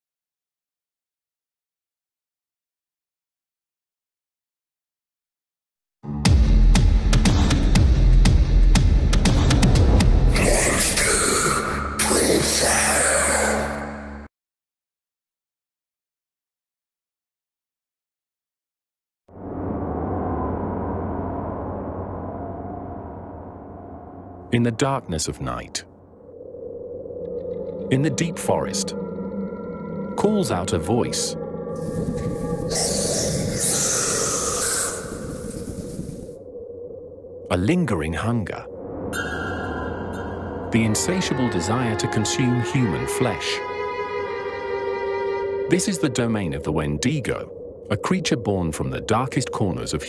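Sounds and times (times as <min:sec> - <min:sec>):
low rumble: 0:19.3 - 0:24.6, 0:25.9 - 0:42.1
loud breathy hiss: 0:32.7 - 0:36.3.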